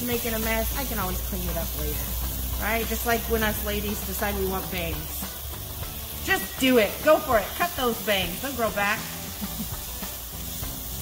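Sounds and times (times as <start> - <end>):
cauliflower sizzling in oil: 0.0 - 11.0.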